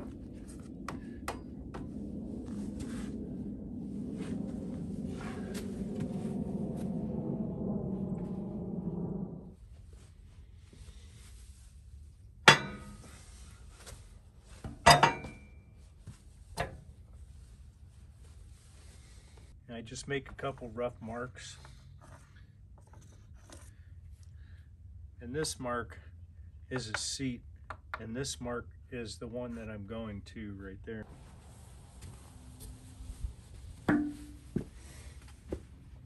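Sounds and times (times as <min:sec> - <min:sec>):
low rough sound with clicks: 0:00.0 - 0:09.6.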